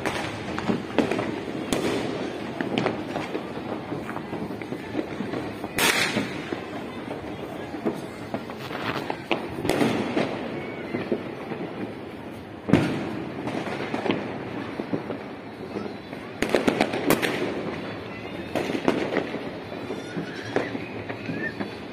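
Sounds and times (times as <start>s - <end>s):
firecrackers banging and popping: 0.0s - 21.9s.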